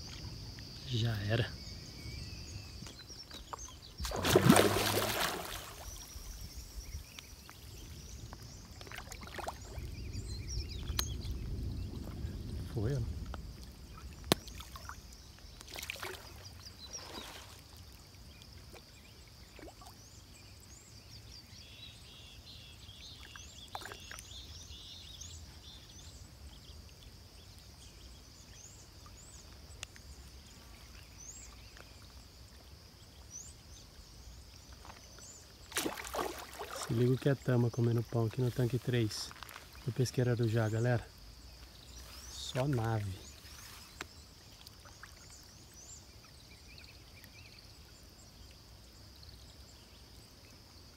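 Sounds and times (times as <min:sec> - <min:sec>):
faint chirps: 0:00.0 - 0:13.2, 0:18.3 - 0:50.7
water sloshing and lapping: 0:02.7 - 0:10.1, 0:13.2 - 0:20.2, 0:34.1 - 0:40.0, 0:41.4 - 0:46.5
big splash: 0:04.0 - 0:06.1, 0:35.7 - 0:37.0.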